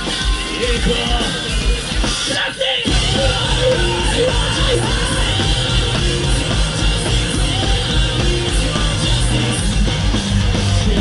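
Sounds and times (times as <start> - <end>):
rock band playing live: 0.0 - 11.0
singer shouting: 2.3 - 8.8.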